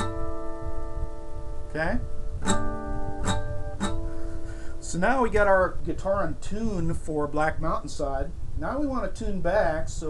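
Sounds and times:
acoustic guitar chord strummed: 0:00.0 - 0:05.2.

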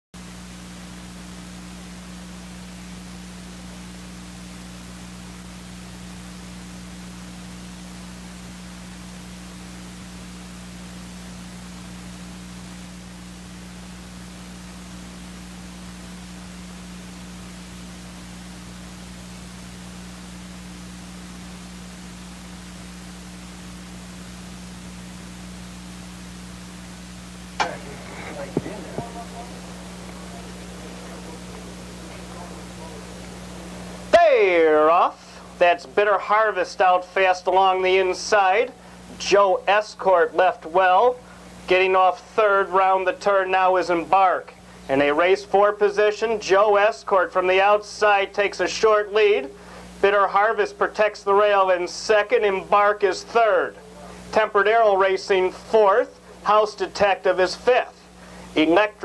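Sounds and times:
recording hiss and hum: 0:00.1 - 0:59.0.

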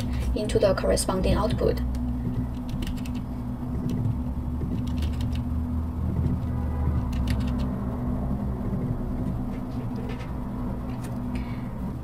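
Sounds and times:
steady low hum: 0:00.0 - 0:12.0
keyboard typing clicks: 0:01.9 - 0:05.5, 0:06.1 - 0:07.7.

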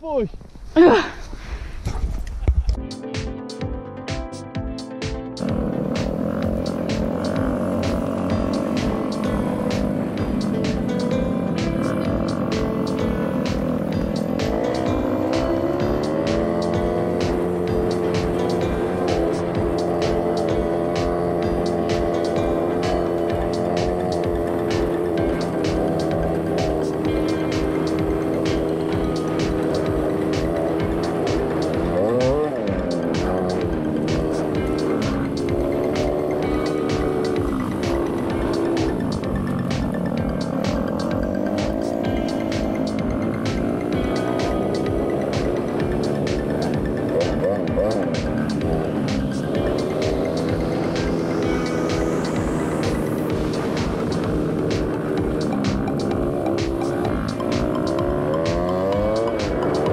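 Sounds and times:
music with steady beat: 0:02.8 - 0:59.9
snowmobile engine running: 0:05.4 - 0:59.9.

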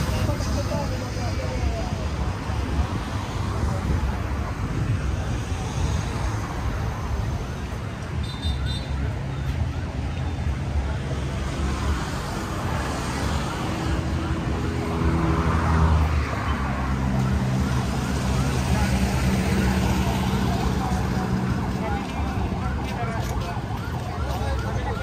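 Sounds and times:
vehicle engines passing: 0:00.0 - 0:25.0.

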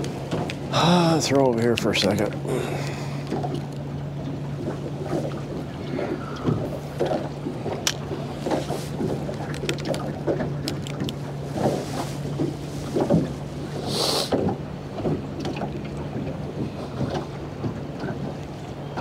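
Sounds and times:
steady low hum: 0:00.0 - 0:19.0
water lapping against boat hull: 0:00.0 - 0:19.0.

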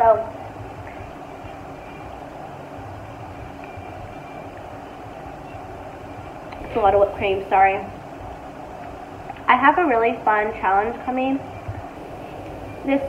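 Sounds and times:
steady background noise: 0:00.0 - 0:13.0.

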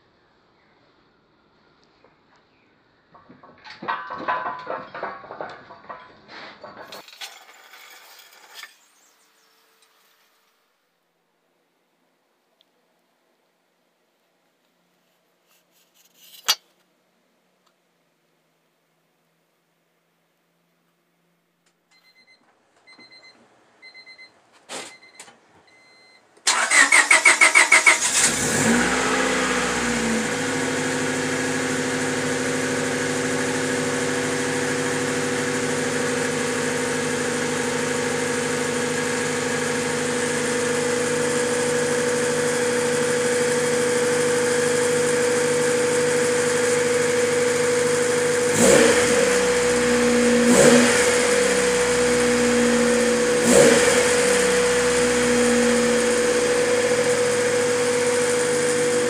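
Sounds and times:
car engine cranking and idling: 0:26.4 - 0:59.0
engine revving: 0:26.5 - 0:59.0.

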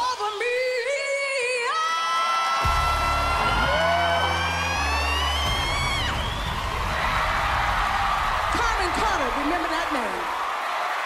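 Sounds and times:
deep bass chords: 0:02.6 - 0:08.6.

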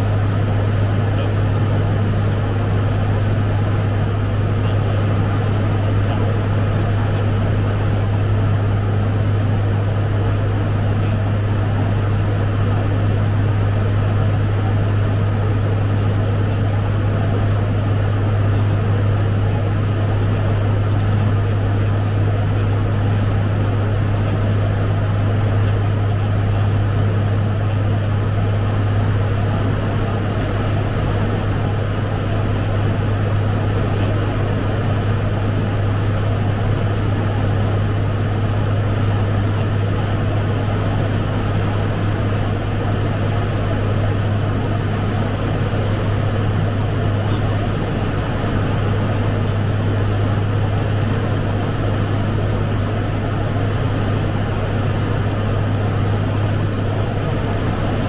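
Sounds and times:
turboprop engines droning: 0:00.0 - 0:58.0.

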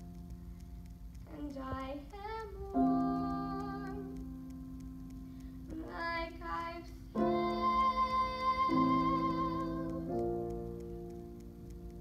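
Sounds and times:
girl singing: 0:01.2 - 0:04.4, 0:05.7 - 0:10.3.

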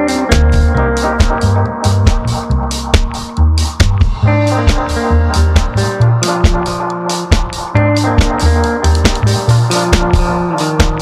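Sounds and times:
drumbeat: 0:00.0 - 0:11.0.

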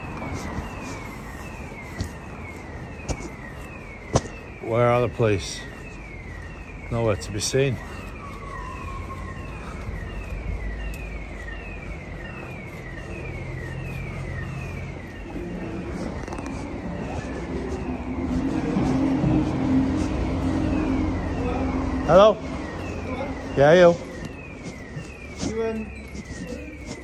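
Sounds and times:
siren sweeping: 0:00.0 - 0:27.0
low vehicle engine rumble: 0:07.8 - 0:27.0.

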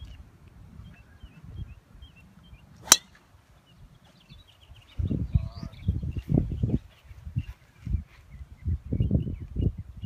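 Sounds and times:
golf club striking ball: 0:02.8 - 0:03.2.

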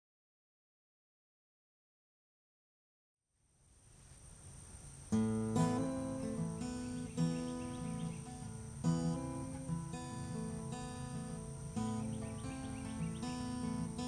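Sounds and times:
acoustic guitar chords: 0:05.0 - 0:14.0.

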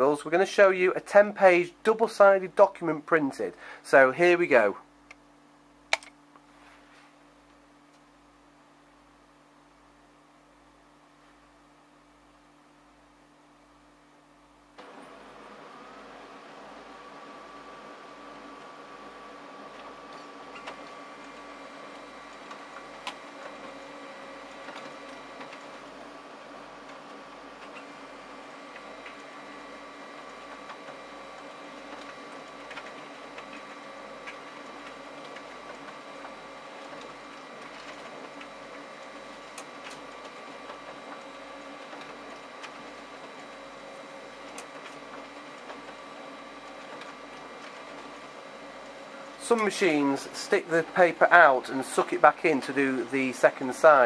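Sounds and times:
printer mechanical hum: 0:00.0 - 0:54.0
printer whining tones: 0:14.8 - 0:54.0
light printer clicks: 0:19.8 - 0:21.4, 0:44.5 - 0:46.0.

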